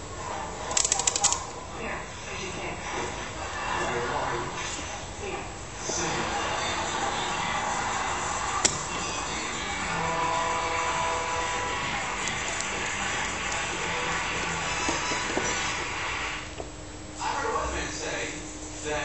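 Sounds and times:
music playing: 0:06.0 - 0:16.1.

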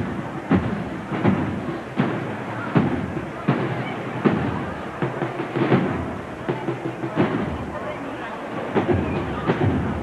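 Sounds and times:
bass drum beating slow march: 0:00.0 - 0:10.0
murmur of voices: 0:00.0 - 0:10.0.

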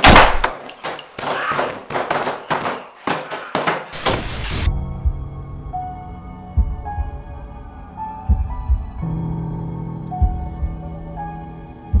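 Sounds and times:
irregular knocks and bangs: 0:00.0 - 0:04.0.

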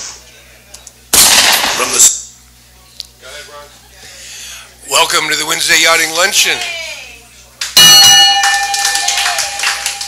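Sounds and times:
people clapping: 0:07.6 - 0:10.0
ship's bell ringing: 0:07.8 - 0:10.0.

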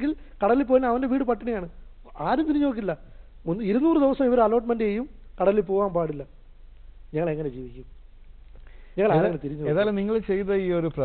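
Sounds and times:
man talking into a microphone: 0:09.0 - 0:11.0.

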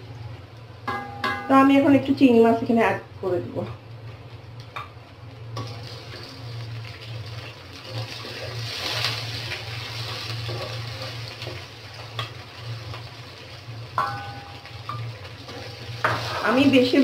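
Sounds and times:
onions sizzling in a pan: 0:00.0 - 0:17.0
metal bowl ringing on pan: 0:00.8 - 0:01.7, 0:14.0 - 0:16.7
spatula scraping a pan: 0:07.9 - 0:13.0, 0:15.4 - 0:16.9.

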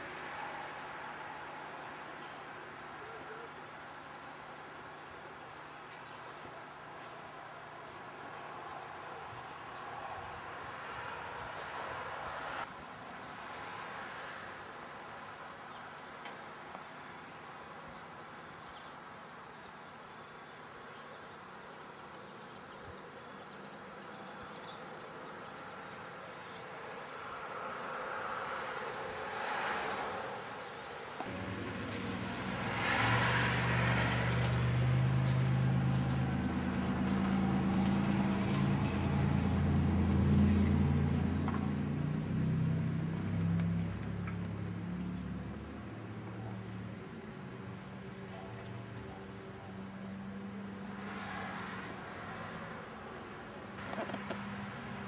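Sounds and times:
crickets chirping: 0:00.0 - 0:55.0
low engine-like drone: 0:31.1 - 0:46.6.

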